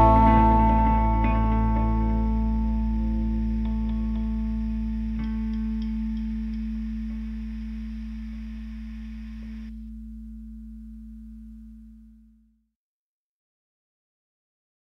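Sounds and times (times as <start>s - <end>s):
electric guitar chord ringing: 0.0s - 8.1s
low bass note: 0.0s - 12.6s.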